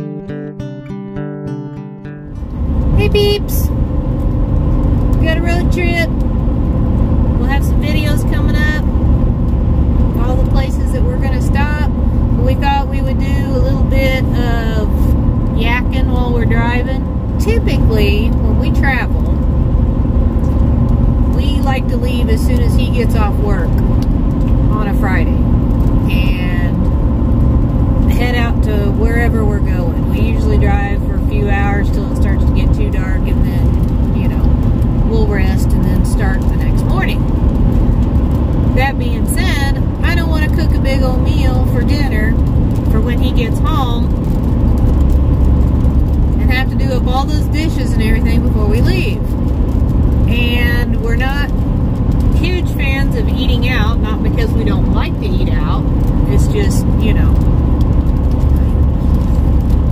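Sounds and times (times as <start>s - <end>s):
truck road and engine rumble: 2.2s - 59.9s
woman talking: 2.9s - 3.8s, 5.2s - 6.2s, 7.4s - 8.9s, 10.2s - 19.3s, 21.3s - 24.0s, 24.6s - 26.9s, 28.0s - 37.2s, 38.7s - 44.2s, 46.4s - 49.3s, 50.3s - 51.6s, 52.4s - 57.4s.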